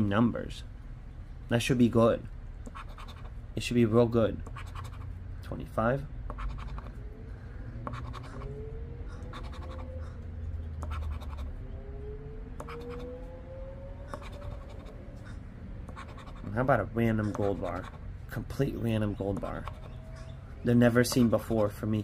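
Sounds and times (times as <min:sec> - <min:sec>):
chip scratching lottery ticket: 0:02.7 - 0:03.3, 0:04.4 - 0:05.1, 0:06.3 - 0:06.9, 0:07.9 - 0:08.5, 0:09.3 - 0:09.9, 0:10.8 - 0:11.5, 0:14.1 - 0:15.0, 0:15.9 - 0:18.0, 0:19.3 - 0:20.0
faint rising tones: 0:06.9 - 0:10.8, 0:11.4 - 0:15.8.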